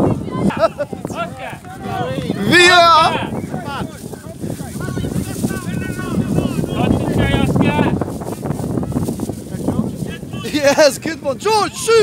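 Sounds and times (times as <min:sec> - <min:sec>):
distant voices shouting: 0:00.0 - 0:07.1.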